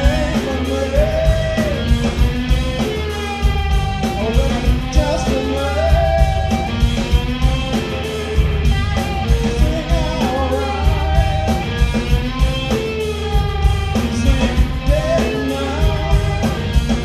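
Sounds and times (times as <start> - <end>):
distorted electric guitar: 0.0 - 17.0
drum kit beat: 0.0 - 17.0
electric bass: 0.0 - 17.0.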